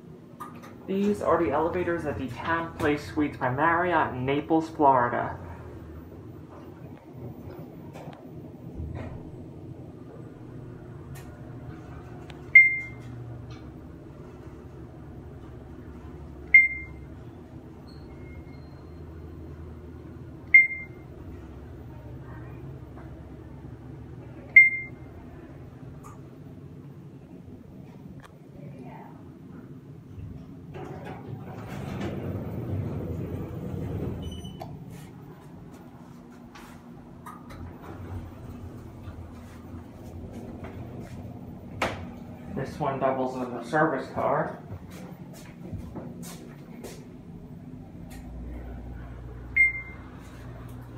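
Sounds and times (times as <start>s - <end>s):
elevator car humming: 0.0s - 28.2s, 29.3s - 50.9s
elevator short high beeps: 12.5s - 13.1s, 16.5s - 17.1s, 17.8s - 19.2s, 20.5s - 21.0s, 24.5s - 25.0s, 34.2s - 34.7s, 49.6s - 50.1s
elevator doors sliding shut: 30.6s - 35.2s, 37.4s - 39.6s.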